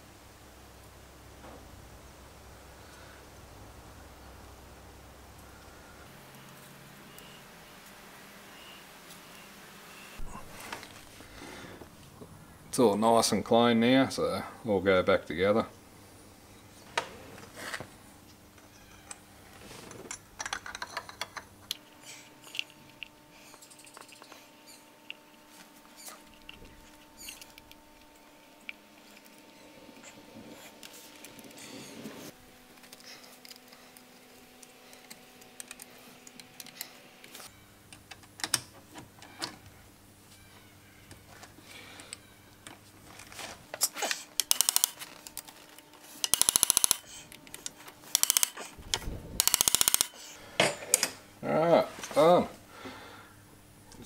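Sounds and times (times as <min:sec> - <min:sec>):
ratchet wrench clicking: 0:44.4 - 0:45.0, 0:46.2 - 0:47.1, 0:48.1 - 0:48.6, 0:49.4 - 0:50.2.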